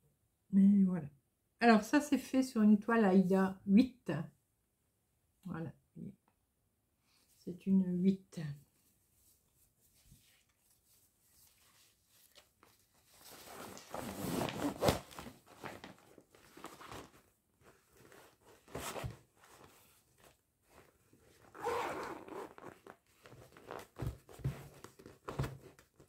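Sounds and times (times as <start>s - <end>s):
plastic crinkling: 10.3s - 19.7s
zipper: 13.4s - 15.3s, 20.7s - 24.1s.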